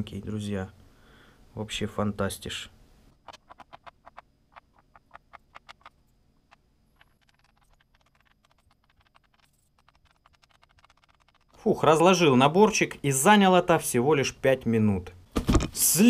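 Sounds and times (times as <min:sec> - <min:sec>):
steel blocks clicking: 0:03.3 - 0:11.6.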